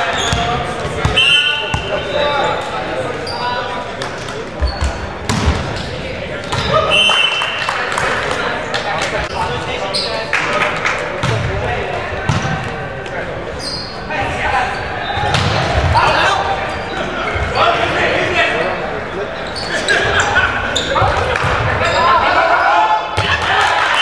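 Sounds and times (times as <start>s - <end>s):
players shouting: 19.7s - 24.0s.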